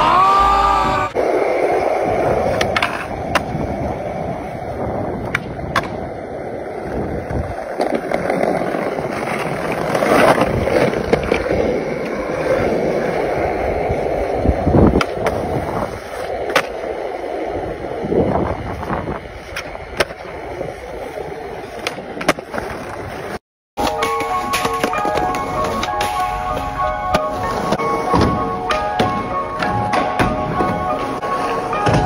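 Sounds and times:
skateboard wheels rolling on concrete: 0.0s - 32.0s.

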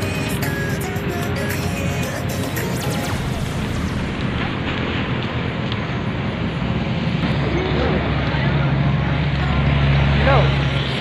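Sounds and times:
fluttering low rumble: 2.4s - 8.3s.

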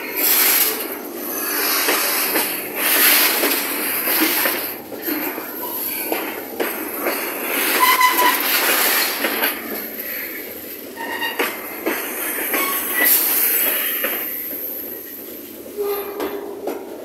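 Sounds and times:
train wheels clattering on rails: 0.0s - 17.0s
wheel squeals: 7.0s - 14.5s.

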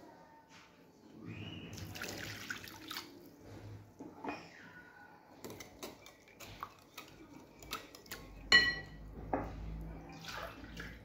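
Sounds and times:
metal clinking on glass: 8.5s - 9.0s.

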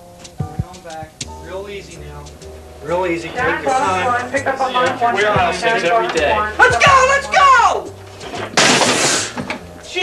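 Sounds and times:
television crashing on floor: 8.2s - 9.8s.

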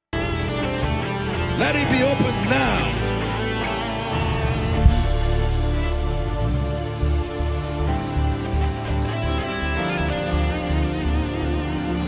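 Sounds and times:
guitar line: 0.2s - 12.0s
live band playing worship music: 0.2s - 12.0s
low pulse: 3.0s - 11.1s.

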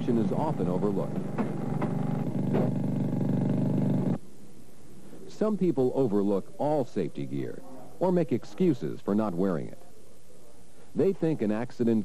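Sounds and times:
motor-driven machine running: 0.0s - 4.2s.

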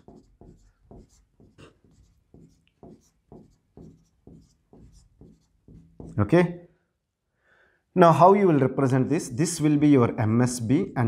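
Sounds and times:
marker writing on whiteboard: 0.0s - 6.5s.

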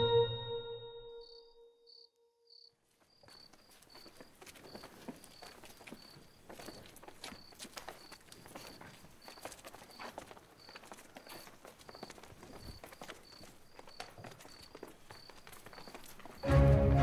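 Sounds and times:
footsteps on hard floor: 3.2s - 16.5s.

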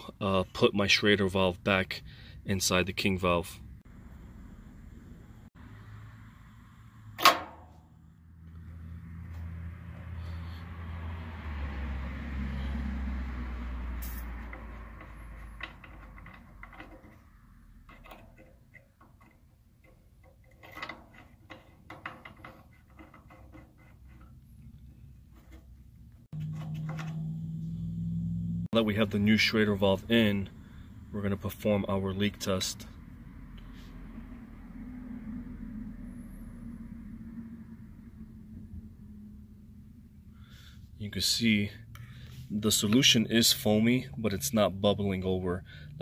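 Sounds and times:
tool lever click: 7.2s - 7.6s
small metal clicks and ticks: 14.4s - 24.7s.

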